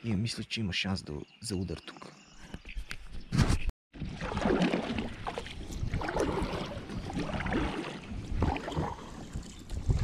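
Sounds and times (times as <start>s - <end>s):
paddle splashing water: 4.0s - 10.0s
wind on microphone: 5.0s - 10.0s.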